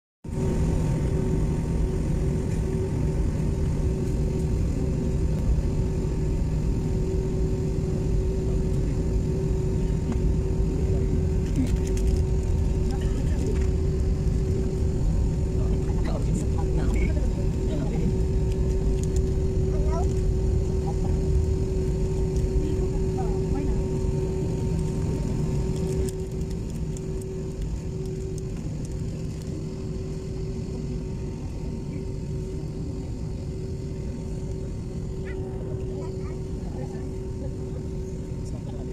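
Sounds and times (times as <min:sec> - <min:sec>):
jet engine rumble: 0:00.3 - 0:38.9
steady engine tone: 0:00.3 - 0:38.9.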